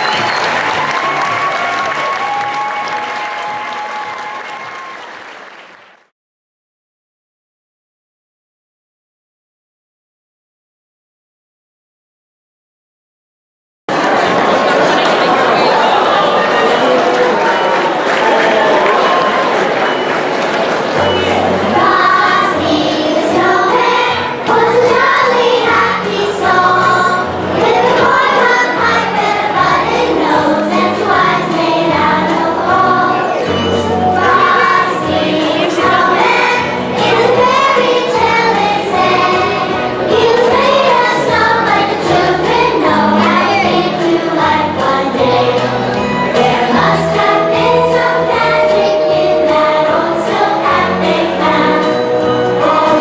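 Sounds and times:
children's choir singing: 13.9 - 53.0
musical accompaniment with bass: 19.0 - 53.0.

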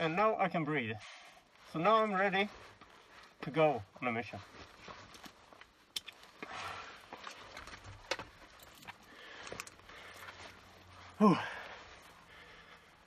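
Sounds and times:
rustling: 0.0 - 13.0
breathing through face mask: 1.0 - 1.7, 6.4 - 7.3, 9.0 - 13.0
mask strap clicks: 5.2 - 6.4.

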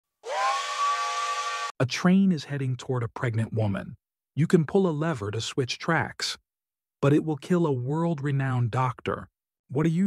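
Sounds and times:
steam train whistle blowing: 0.2 - 1.7.

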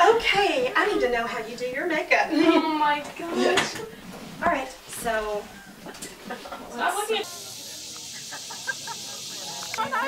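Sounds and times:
steady high hiss: 3.0 - 10.0.

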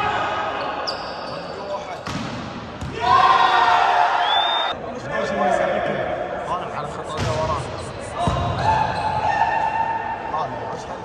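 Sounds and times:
players shouting and calling: 0.0 - 2.1, 2.7 - 11.0.

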